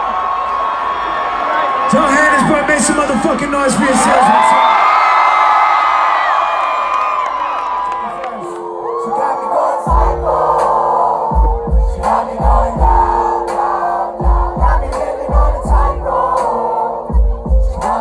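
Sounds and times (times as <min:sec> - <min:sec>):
crowd screaming and cheering: 0:00.0 - 0:18.0
hip-hop track over loudspeakers: 0:08.4 - 0:18.0
synth chords: 0:08.4 - 0:18.0.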